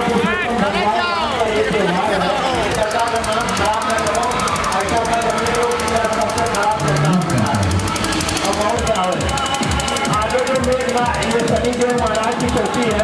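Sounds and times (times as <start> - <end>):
fast rattling pulse: 0.0 - 13.0
people's voices: 0.0 - 13.0.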